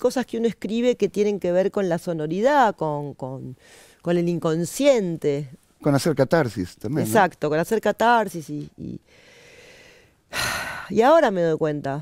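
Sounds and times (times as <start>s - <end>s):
woman speaking: 0.0s - 5.6s, 7.0s - 9.0s, 10.9s - 12.0s
woman breathing: 3.6s - 4.0s, 9.0s - 10.9s.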